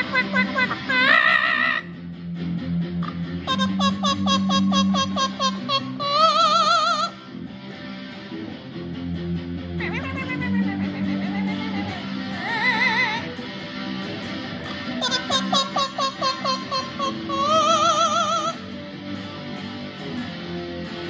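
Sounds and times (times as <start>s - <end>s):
parrot singing: 0.0s - 1.9s, 3.5s - 7.2s, 9.8s - 13.3s, 15.0s - 18.6s
distorted electric guitar rock: 0.0s - 21.0s.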